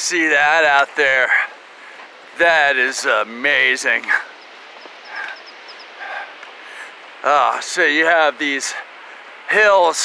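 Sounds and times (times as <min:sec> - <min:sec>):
low bird calls: 0:03.9 - 0:07.0
small bird chirping: 0:04.3 - 0:06.1.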